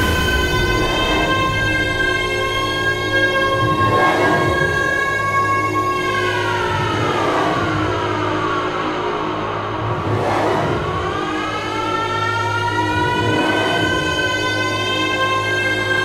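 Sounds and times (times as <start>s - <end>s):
steady bass tone: 0.0s - 15.2s
synth line sliding in pitch: 0.0s - 15.8s.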